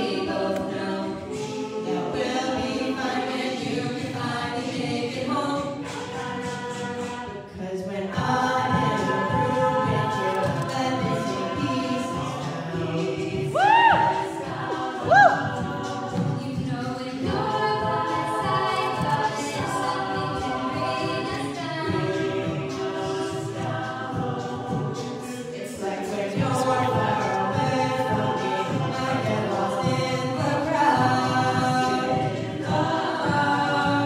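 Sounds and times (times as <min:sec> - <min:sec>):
sustained backing vocal harmonies: 0:00.0 - 0:34.0.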